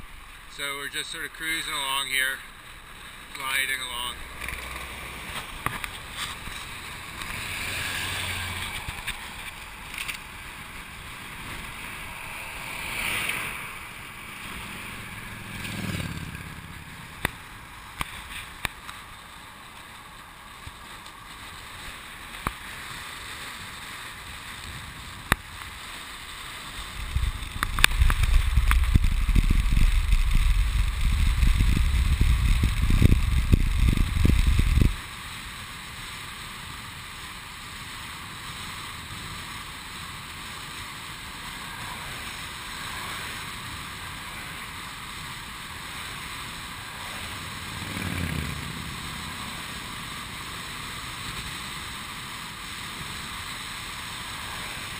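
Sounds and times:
heavy low wind buffeting: 26.8 - 35.0
wind rushing over microphone: 26.8 - 35.0.

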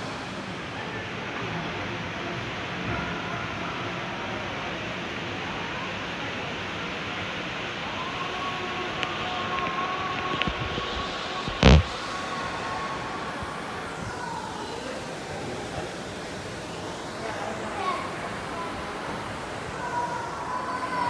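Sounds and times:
aquarium background noise: 0.0 - 21.0.

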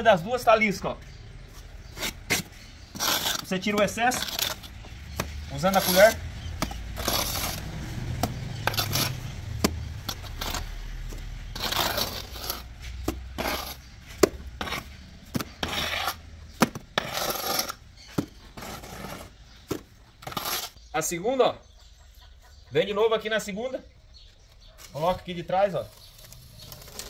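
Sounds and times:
trowel scraping mortar: 1.8 - 20.8.

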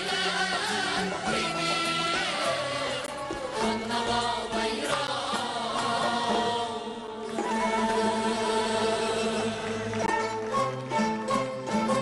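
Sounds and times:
voices holding long notes: 0.0 - 12.0.

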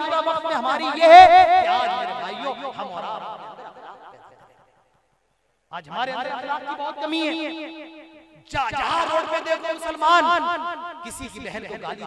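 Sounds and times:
man singing amplified: 0.0 - 4.1.

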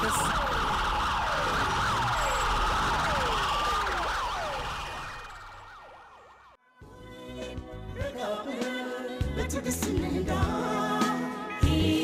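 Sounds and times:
emergency vehicle sirens wailing: 0.0 - 6.6
music: 6.6 - 12.0.

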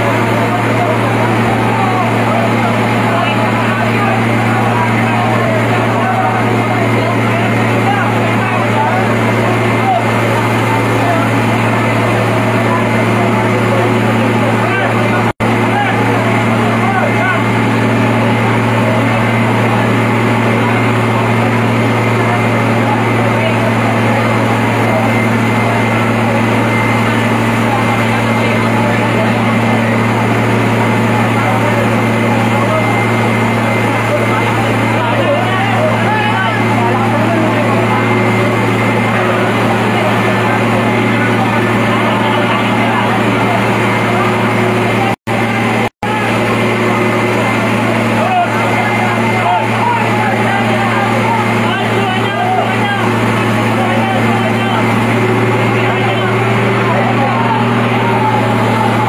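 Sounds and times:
fire truck engine drone: 0.0 - 59.0
people talking and calling: 0.0 - 59.0.

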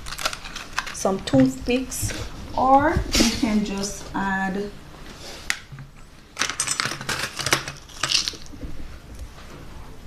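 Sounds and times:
wooden toothpicks clattering: 0.0 - 1.1, 6.4 - 8.5.

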